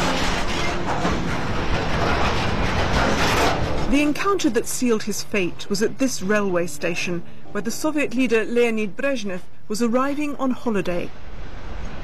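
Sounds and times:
train running on rails: 0.0 - 12.0.

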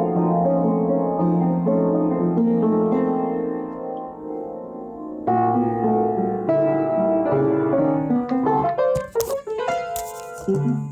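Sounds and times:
upright piano notes and chord: 0.0 - 10.9.

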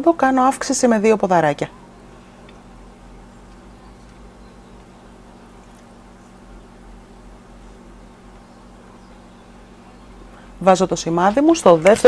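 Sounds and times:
faint hum and hiss: 0.0 - 12.0.

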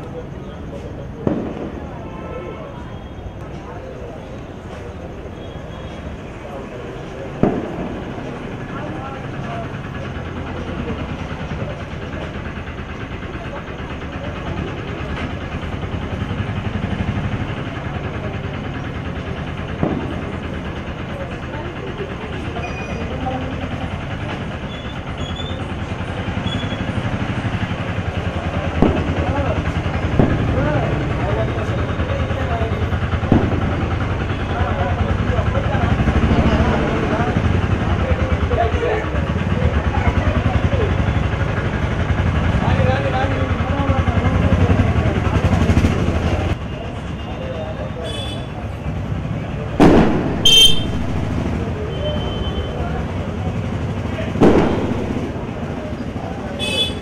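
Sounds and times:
people talking: 0.0 - 57.0
steady engine hum: 0.0 - 57.0
sharp loud noises: 49.7 - 52.9, 54.3 - 57.0.

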